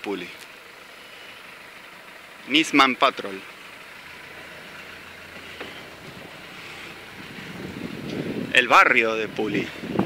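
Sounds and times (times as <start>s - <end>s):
car engine hum: 0.0s - 10.0s
wind on microphone: 6.1s - 10.0s.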